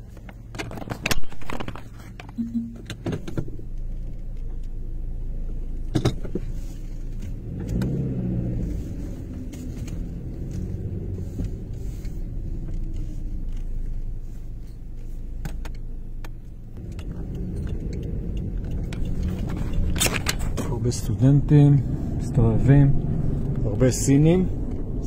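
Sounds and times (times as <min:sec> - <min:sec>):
car engine and road rumble: 0:00.0 - 0:25.0.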